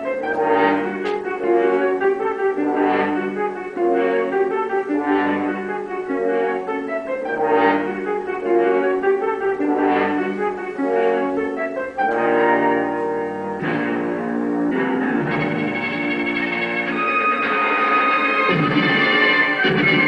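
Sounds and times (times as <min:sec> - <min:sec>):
orchestral brass chords: 0:00.0 - 0:20.0.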